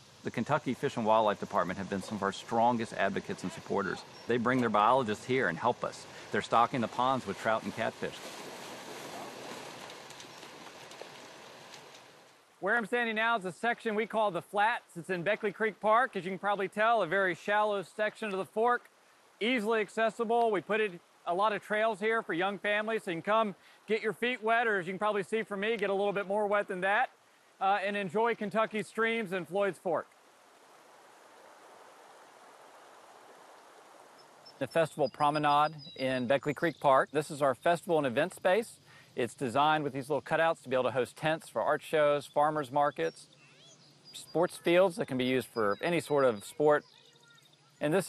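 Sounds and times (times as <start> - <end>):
creek running over riffles: 0.0 - 48.0
water gushing and splashing: 1.4 - 12.2.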